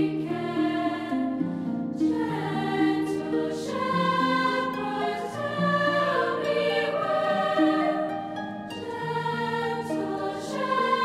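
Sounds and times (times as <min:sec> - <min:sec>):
girls' choir singing: 0:00.0 - 0:11.0.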